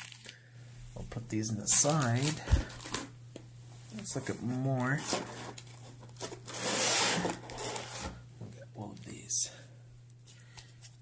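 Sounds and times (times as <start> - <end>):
cards rustling in cardboard box: 4.0 - 8.2.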